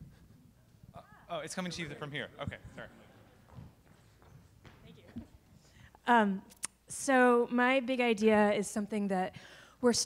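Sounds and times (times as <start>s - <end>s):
woman speaking: 6.0s - 10.0s.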